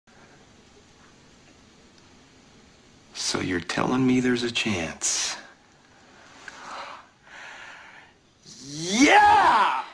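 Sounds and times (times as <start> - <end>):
man breathing out: 6.5 - 8.2.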